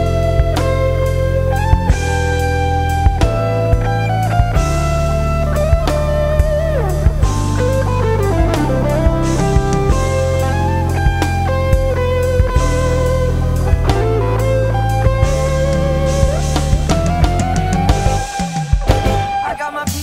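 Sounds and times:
electric bass: 0:00.0 - 0:19.6
electric guitar lead: 0:00.0 - 0:19.8
drum kit: 0:00.0 - 0:20.0
keyboards: 0:00.0 - 0:20.0.

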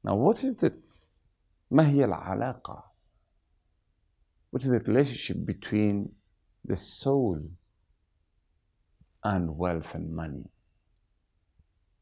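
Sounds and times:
man speaking: 0:00.0 - 0:00.8, 0:01.7 - 0:02.9, 0:04.5 - 0:07.6, 0:09.2 - 0:10.6.

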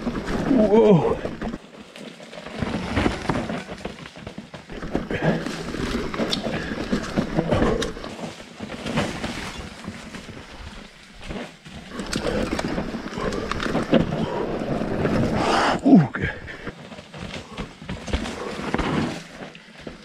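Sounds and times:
bike knocks and rattles: 0:00.0 - 0:15.4
bike tyres on dirt: 0:00.0 - 0:20.0
rider's wordless vocal sounds: 0:00.1 - 0:01.6, 0:04.6 - 0:08.3, 0:11.7 - 0:16.8.

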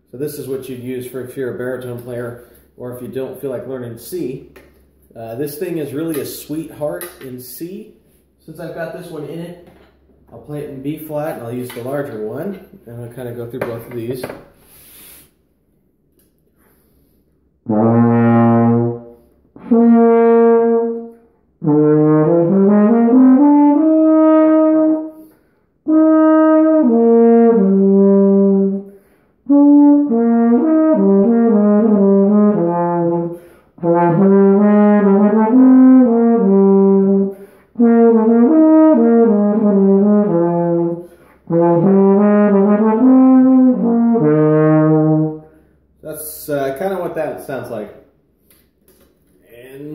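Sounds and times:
brass horn playing low notes: 0:17.6 - 0:45.6
brass horn melody: 0:17.6 - 0:45.7.

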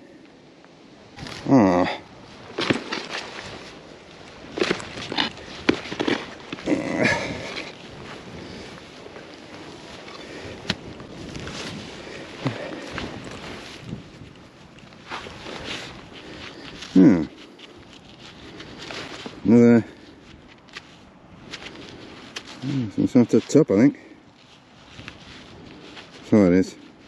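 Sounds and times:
hand digger scraping soil: 0:04.4 - 0:19.8.

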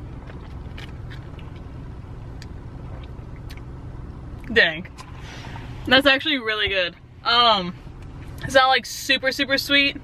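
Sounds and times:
car idling: 0:00.0 - 0:10.0.

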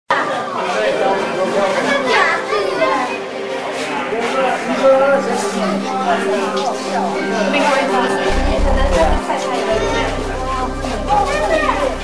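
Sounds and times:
chatter of voices: 0:00.1 - 0:12.0
children talking and calling: 0:00.1 - 0:12.0.

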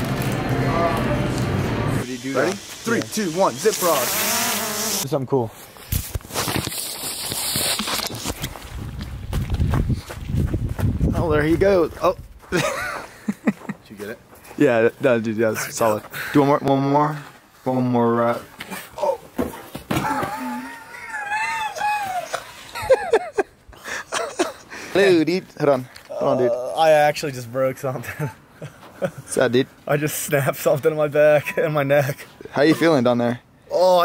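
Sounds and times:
footsteps walking: 0:05.5 - 0:15.2, 0:17.1 - 0:17.7
clothing rubbing on microphone: 0:05.6 - 0:10.6
laughter: 0:12.5 - 0:13.8, 0:20.0 - 0:24.7, 0:28.0 - 0:29.3
man crying out: 0:19.9 - 0:22.5.

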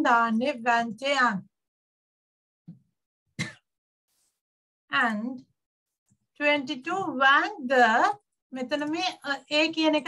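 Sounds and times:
woman clearing her throat: 0:03.4 - 0:03.7.

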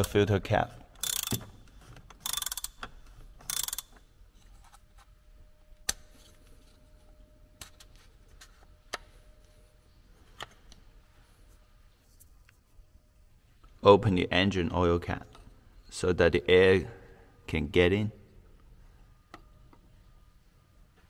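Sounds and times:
parts being handled: 0:00.0 - 0:09.6
ratchet wrench clicking: 0:01.0 - 0:01.5, 0:02.2 - 0:04.0.

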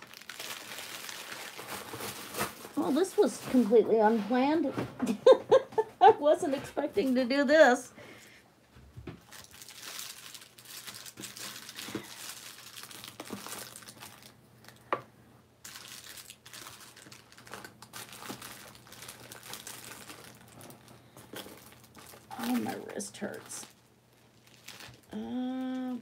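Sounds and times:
craft supplies rustling and crinkling: 0:00.0 - 0:04.8, 0:09.2 - 0:14.9, 0:15.6 - 0:25.1.

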